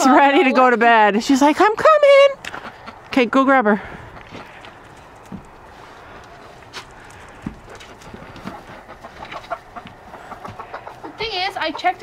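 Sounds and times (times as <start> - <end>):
hen clucking: 2.1 - 3.4, 6.0 - 12.0
rustling: 3.9 - 11.3.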